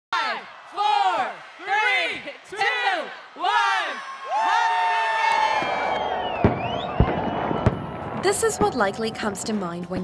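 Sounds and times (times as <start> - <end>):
firework rising whistle: 5.3 - 9.1
fireworks bangs: 5.5 - 9.6.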